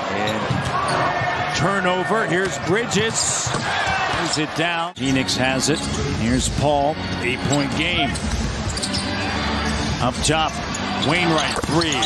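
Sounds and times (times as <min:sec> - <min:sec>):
arena crowd noise: 0:00.0 - 0:12.0
faint sneaker squeaks: 0:07.5 - 0:09.1.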